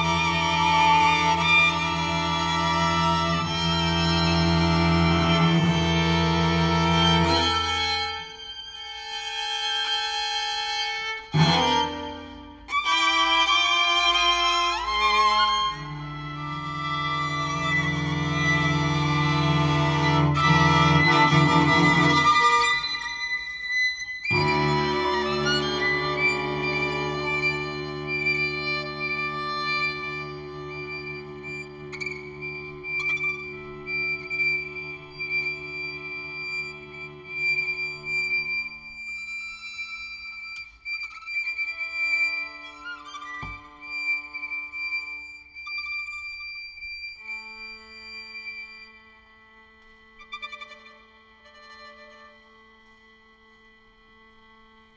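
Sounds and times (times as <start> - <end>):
string quartet playing: 0.0 - 23.4, 24.2 - 39.0.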